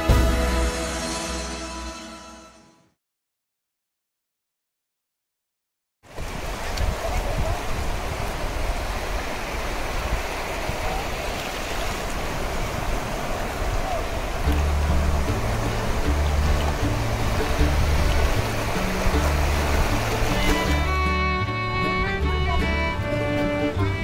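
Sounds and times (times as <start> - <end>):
background music with bass: 0.0 - 2.5, 14.5 - 24.0
waves washing over sand: 6.1 - 24.0
bowed strings: 14.3 - 24.0.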